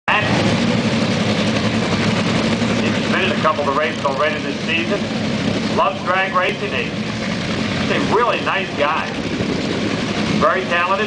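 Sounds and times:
loud engine idling: 0.1s - 11.0s.

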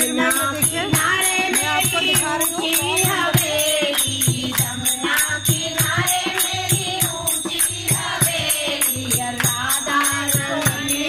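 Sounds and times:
hand percussion beat: 0.0s - 11.0s
women singing devotional song: 0.0s - 11.0s.

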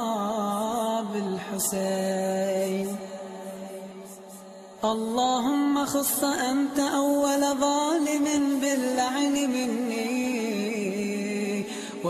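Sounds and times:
person chanting: 0.0s - 12.0s.

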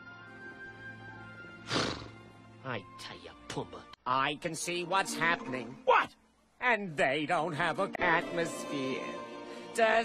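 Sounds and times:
soft film underscore: 0.0s - 10.0s
lion vocal sound: 1.6s - 2.2s
man's voice: 2.7s - 10.0s.

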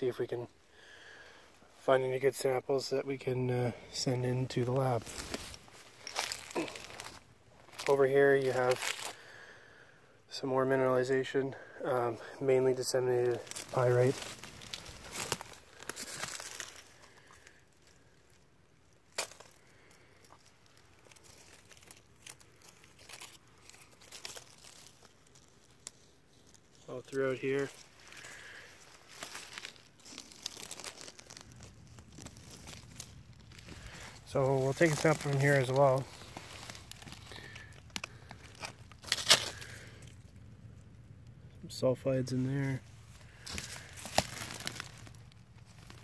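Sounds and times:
brush and loose rock crunching: 0.0s - 9.6s, 10.4s - 40.8s, 41.7s - 46.0s
leaves and pine needles rustling: 0.0s - 46.0s.

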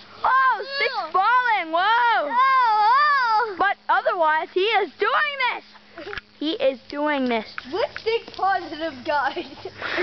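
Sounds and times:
young person wailing: 0.3s - 1.2s, 1.9s - 3.5s.

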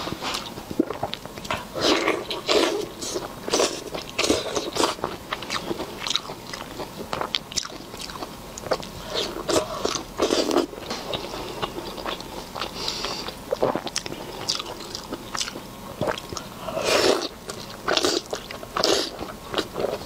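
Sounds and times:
biting and wet chewing: 0.1s - 20.0s.

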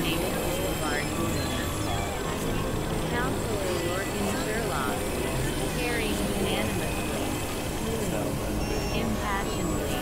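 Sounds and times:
low rumbling synth drone: 0.0s - 10.0s.

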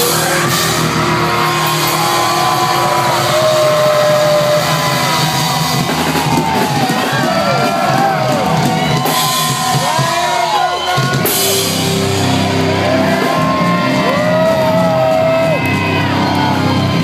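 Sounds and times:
crowd shouting and whooping: 0.0s - 17.0s
heavy metal band playing: 0.0s - 17.0s.

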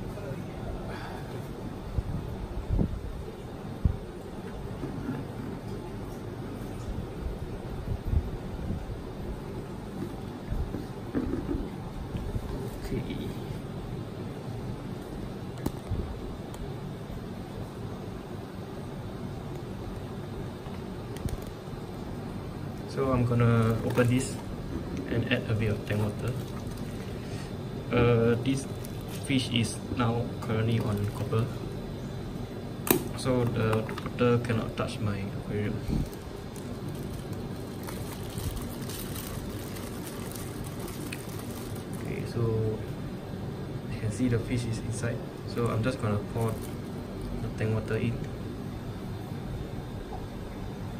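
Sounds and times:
low background hum and hiss: 0.0s - 50.9s
plastic bag rustling: 23.2s - 27.5s, 28.4s - 29.6s, 30.6s - 31.6s, 35.7s - 42.4s, 45.5s - 47.4s.

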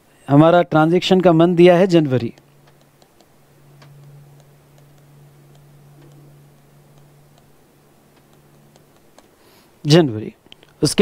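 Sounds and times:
low steady hum: 0.0s - 11.0s
stylus tapping on tablet: 2.3s - 9.4s.

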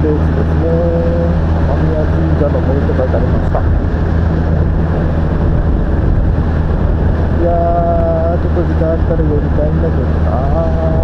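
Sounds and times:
motorcycle engine hum: 0.0s - 11.0s
road noise: 0.0s - 11.0s
wind rushing on microphone: 0.0s - 11.0s.

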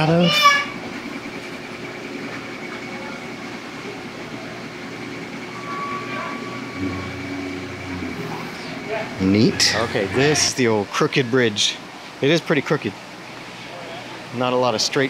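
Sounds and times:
mill works rumbling: 0.0s - 12.2s
faint hum: 0.0s - 14.4s.

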